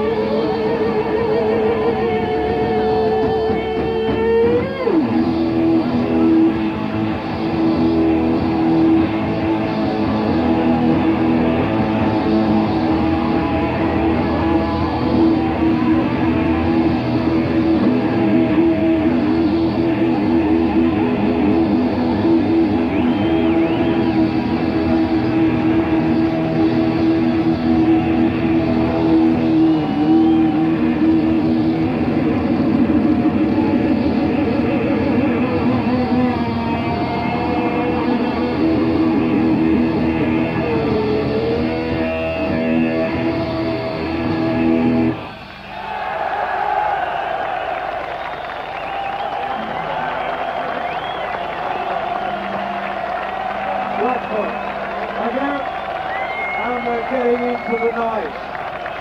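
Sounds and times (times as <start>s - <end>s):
live rock band playing: 0.0s - 45.5s
crowd cheering: 0.0s - 59.0s.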